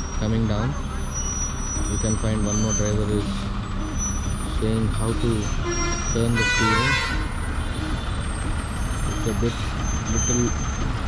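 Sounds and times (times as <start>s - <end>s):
lorry diesel engine rumbling: 0.0s - 11.0s.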